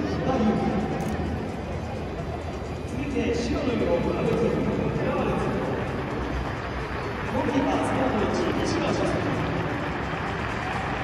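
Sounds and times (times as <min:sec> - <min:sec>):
stadium crowd hubbub: 0:00.0 - 0:11.0.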